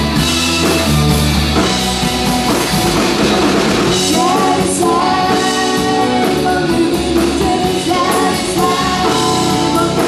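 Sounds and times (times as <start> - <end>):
rock-funk band playing: 0.0 - 10.0
person singing lead vocal: 3.9 - 10.0.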